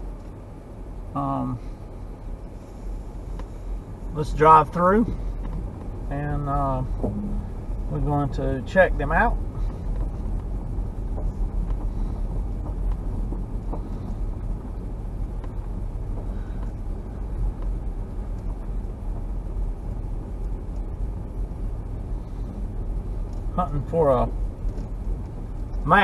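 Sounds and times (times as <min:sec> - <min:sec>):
vehicle rumbling over gravel: 0:01.3 - 0:26.0
faint ticks: 0:11.1 - 0:21.5.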